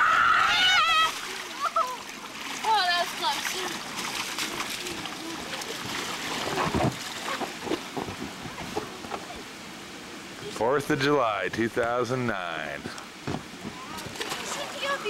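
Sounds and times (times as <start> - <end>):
water splashing: 0.0 - 9.8, 10.4 - 15.0
children's voices: 0.6 - 6.1, 13.6 - 15.0.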